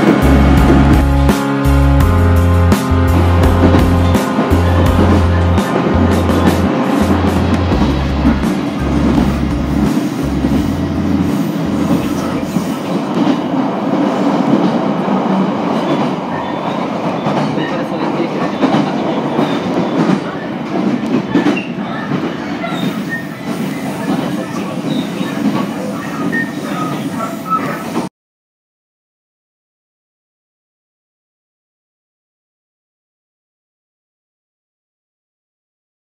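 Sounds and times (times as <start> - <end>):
background music with deep bass: 0.0 - 12.5
train wheels rumbling on track: 0.0 - 28.1.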